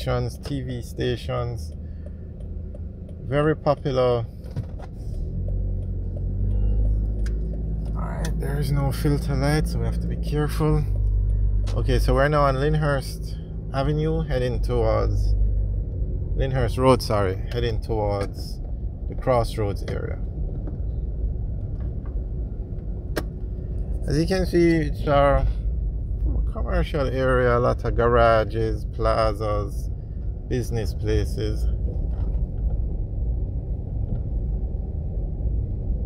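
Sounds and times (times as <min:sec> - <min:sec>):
car driving rumble: 0:00.0 - 0:36.0
tyres on road: 0:00.0 - 0:36.0.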